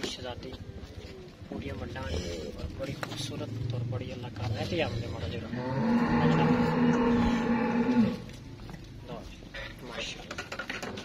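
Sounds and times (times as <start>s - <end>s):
cattle mooing: 4.8s - 8.3s.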